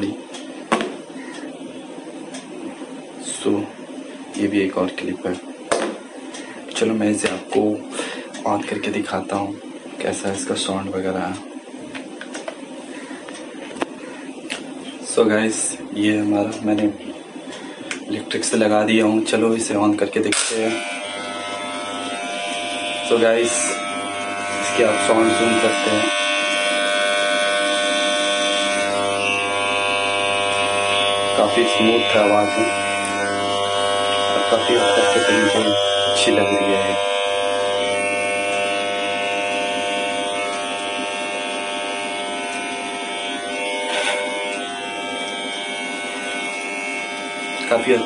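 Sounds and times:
electric hair trimmer buzzing: 17.9s - 48.0s.

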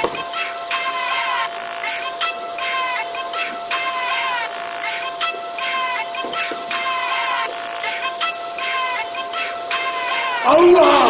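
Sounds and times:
synthesized voice-like phrases: 10.4s - 11.0s.

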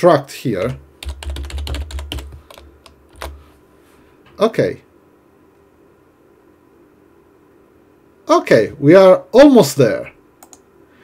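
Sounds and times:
typing on computer keyboard: 0.6s - 3.4s, 10.4s - 10.6s.

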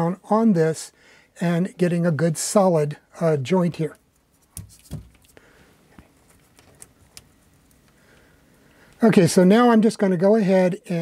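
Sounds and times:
wires being handled: 3.8s - 9.0s.

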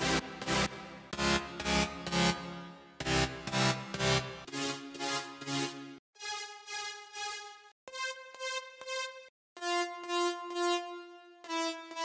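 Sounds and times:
synthesizer chord stabs: 0.0s - 12.0s.

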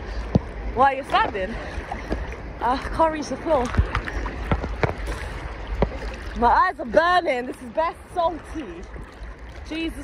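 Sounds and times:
sea water sloshing: 0.0s - 10.0s.

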